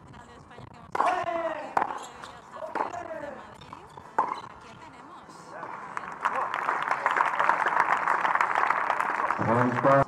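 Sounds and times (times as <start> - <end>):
tennis racket striking ball: 0.9 - 4.5.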